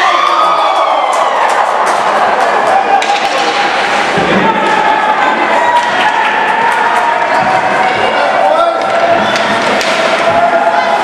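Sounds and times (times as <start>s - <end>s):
hockey sticks and puck clacking: 1.4s - 11.0s.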